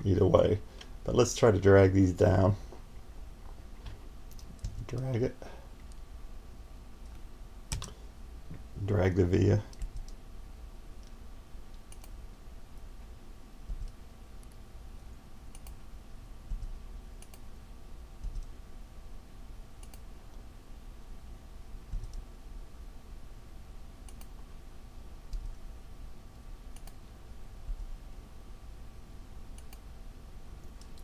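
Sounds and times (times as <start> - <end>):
steady low hum: 0.0 - 31.0
mouse and keyboard clicks: 11.8 - 12.2, 19.8 - 20.0, 24.1 - 24.3, 26.7 - 27.0, 29.6 - 29.8.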